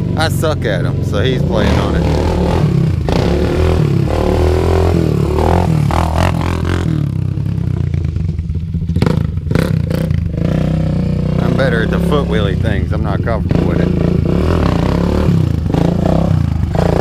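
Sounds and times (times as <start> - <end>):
quad bike engine revving: 0.0 - 17.0.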